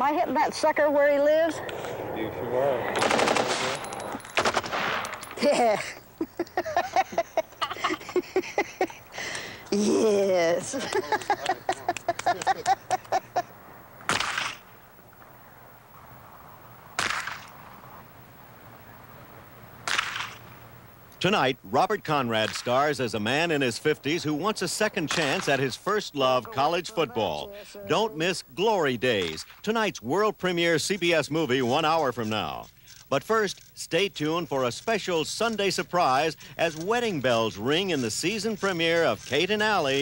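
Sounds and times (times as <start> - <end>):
faint low hum: 0.0 - 40.0
automatic gunfire bursts: 2.9 - 3.8
handgun shots: 14.1 - 14.6.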